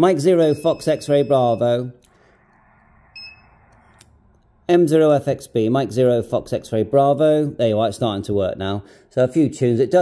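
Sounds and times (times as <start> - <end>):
short high electronic beep: 3.1 - 3.6.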